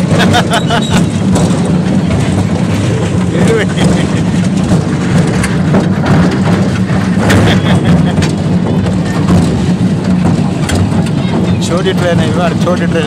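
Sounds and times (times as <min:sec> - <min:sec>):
miniature train rumbling: 0:00.0 - 0:13.0.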